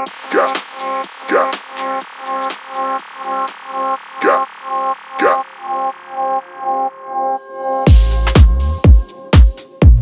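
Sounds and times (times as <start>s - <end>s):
hi-hats: 0.0s - 4.4s, 7.9s - 10.0s
distorted synth chord stabs: 0.0s - 7.4s.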